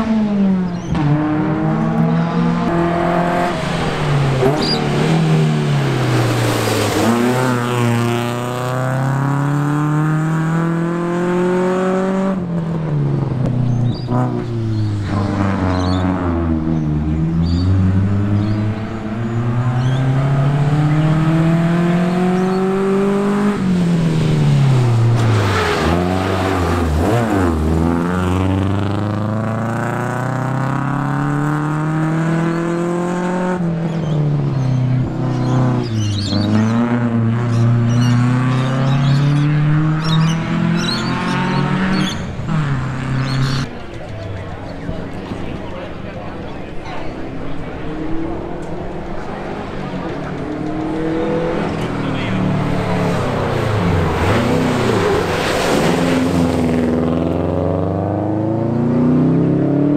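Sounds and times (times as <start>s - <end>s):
rally car engine at full throttle: 0.0s - 59.9s.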